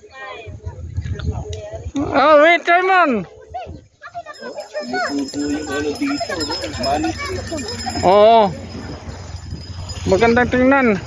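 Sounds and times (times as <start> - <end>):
people talking: 3.5 - 9.0, 10.0 - 11.0.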